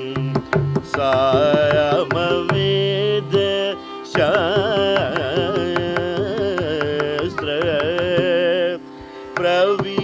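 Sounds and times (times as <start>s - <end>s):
man singing ornamented melody: 0.0s - 10.0s.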